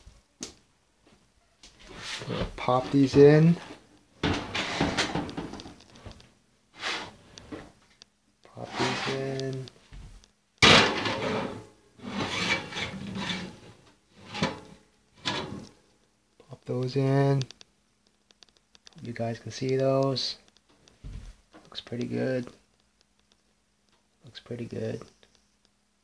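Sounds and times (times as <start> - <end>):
plate scraping on wire rack: 3.6 - 5.5, 6.8 - 7.2, 8.6 - 9.2, 10.6 - 15.7.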